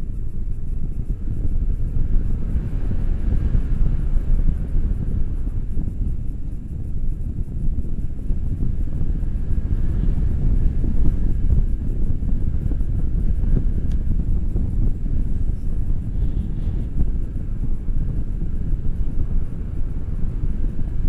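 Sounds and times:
wind rushing over microphone: 0.0 - 21.0.

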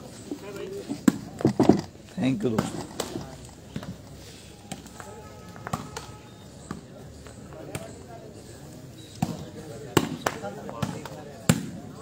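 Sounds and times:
crowd voices: 0.0 - 12.0.

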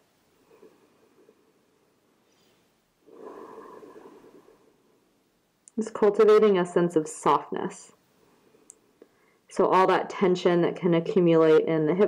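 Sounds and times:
woman exhaling: 3.1 - 4.7.

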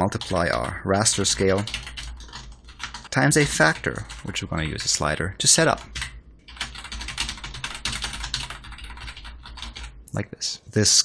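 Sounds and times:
fast typing on keyboard: 0.0 - 10.0.

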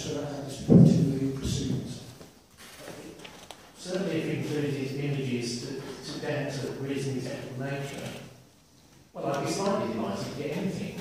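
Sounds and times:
people talking: 0.0 - 8.3, 9.2 - 11.0.

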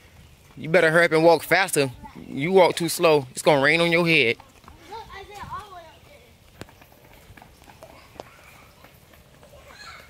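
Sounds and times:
footsteps on paved path: 0.0 - 10.0
faint voices: 0.5 - 10.0.

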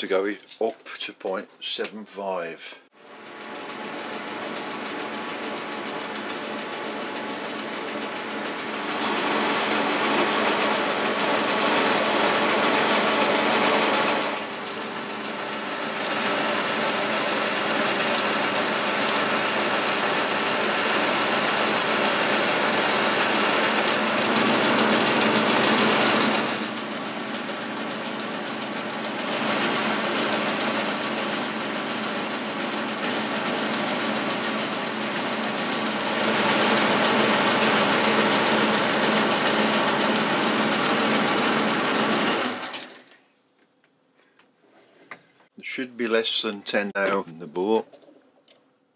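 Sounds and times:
lathe machine drone: 3.0 - 43.1.

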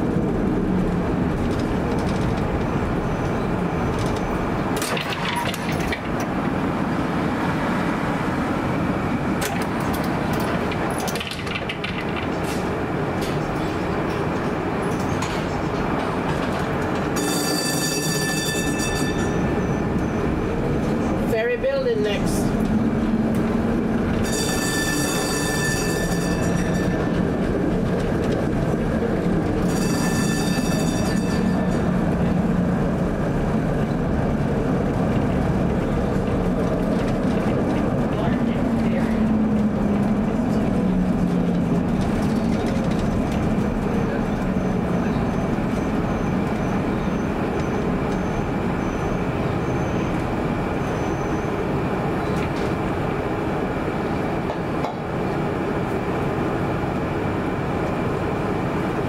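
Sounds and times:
streetcar running noise: 0.0 - 59.0
high-pitched ringing squeals: 17.2 - 20.2, 24.2 - 27.2, 29.6 - 31.9.

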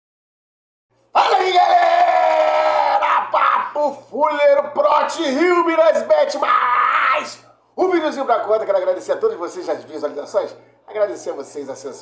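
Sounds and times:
man shouting: 1.2 - 8.0.

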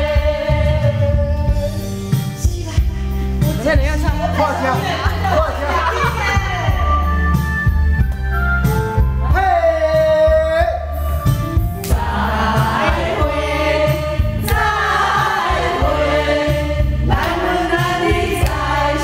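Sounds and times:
group singing karaoke: 0.0 - 6.9, 11.6 - 19.0
karaoke backing track with bass: 0.0 - 19.0.

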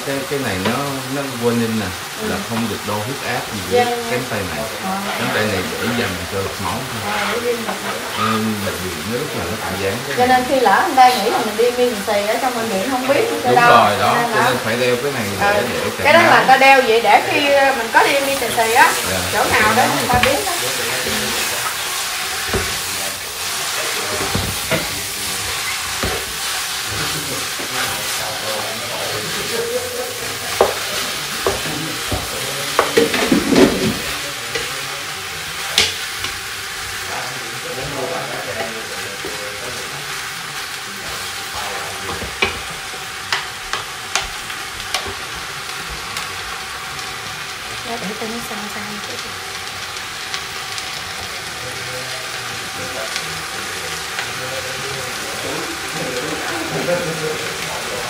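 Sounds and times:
curry sizzling in a pot: 0.0 - 58.0.

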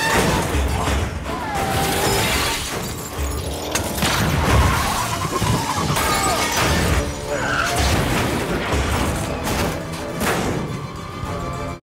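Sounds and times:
crashing and shattering debris: 0.0 - 11.1
film music score: 0.0 - 11.8.

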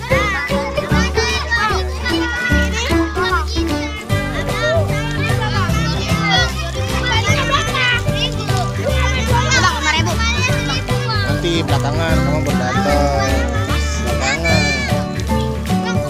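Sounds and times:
background music with bass line: 0.0 - 16.0
children talking and calling out: 0.0 - 16.0.

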